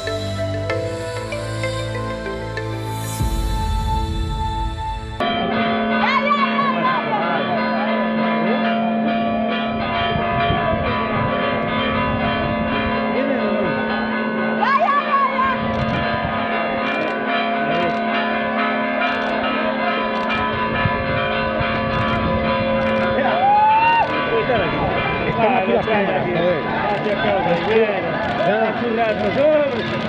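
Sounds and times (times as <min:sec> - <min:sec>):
bells pealing: 0:04.6 - 0:30.0
people shouting: 0:23.2 - 0:24.2.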